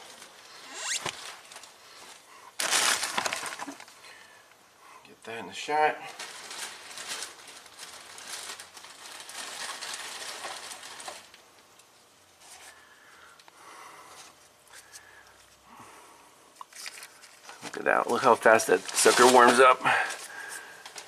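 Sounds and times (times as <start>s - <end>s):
rustling and crinkling handling noise: 0.0s - 4.6s, 5.4s - 13.5s, 16.5s - 21.0s.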